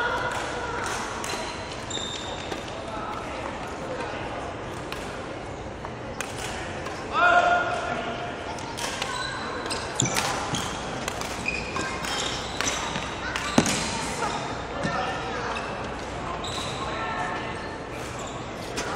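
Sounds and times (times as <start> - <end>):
voices echoing in hall: 0.0 - 18.9.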